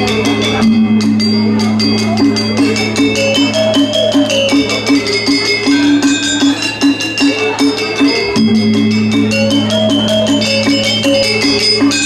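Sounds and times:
metallophones struck with mallets: 0:00.0 - 0:12.0.

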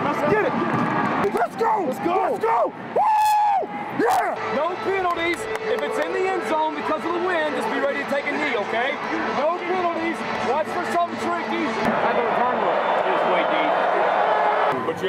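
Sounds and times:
players shouting and chanting: 0:03.6 - 0:14.8.

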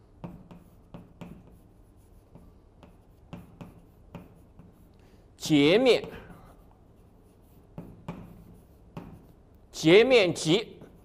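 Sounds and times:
chalk tapping and scraping on blackboard: 0:00.0 - 0:11.0.

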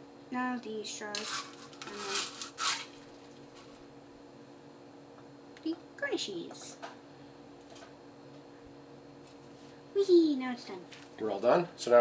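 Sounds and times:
straws crunching in crushed ice: 0:01.2 - 0:03.1.

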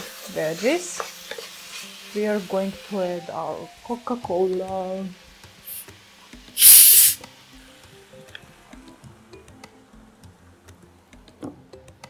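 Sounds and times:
liquid sizzling in hot oil: 0:00.0 - 0:07.9.

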